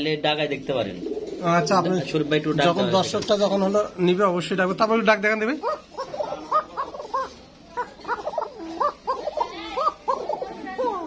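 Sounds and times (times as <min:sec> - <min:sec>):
animal yelping: 0:05.6 - 0:11.0.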